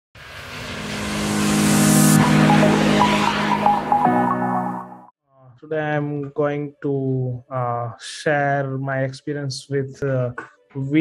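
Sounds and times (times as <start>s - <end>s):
hissing whoosh: 0.2s - 3.8s
low steady drone: 0.4s - 4.9s
opening music: 0.5s - 5.1s.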